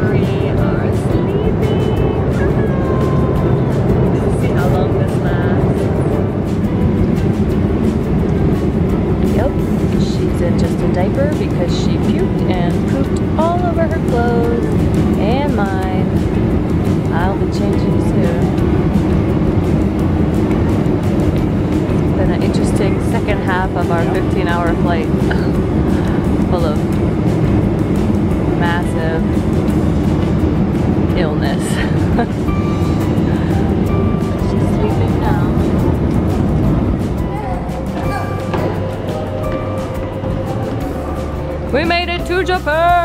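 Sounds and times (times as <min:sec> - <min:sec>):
airliner cabin drone: 0:00.0 - 0:43.0
music: 0:00.0 - 0:43.0.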